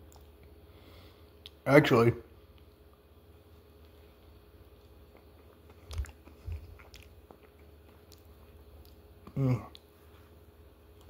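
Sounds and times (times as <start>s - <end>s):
chewing ice cream cone: 2.5s - 11.0s.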